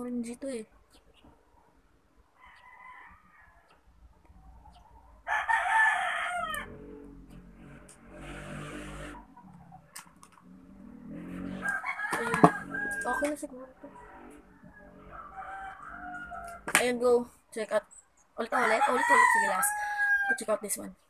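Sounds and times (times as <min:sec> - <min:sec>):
rooster crowing: 0:02.4 - 0:03.8, 0:05.2 - 0:07.6, 0:10.8 - 0:16.7, 0:18.5 - 0:20.5
faint pitched calls: 0:12.5 - 0:16.7.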